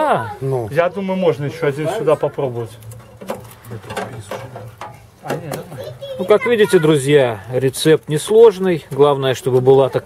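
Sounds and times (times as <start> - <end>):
light clicks and knocks: 2.8 - 5.6.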